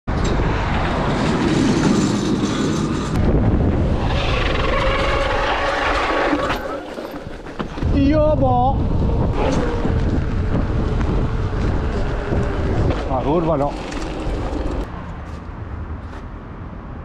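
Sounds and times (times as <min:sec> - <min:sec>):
wind buffeting microphone: 0:00.1 - 0:14.9
tyre noise on asphalt: 0:00.1 - 0:16.6.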